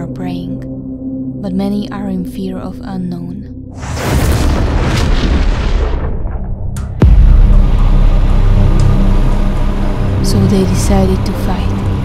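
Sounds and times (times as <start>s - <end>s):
explosion with low rumble: 3.8s - 9.9s.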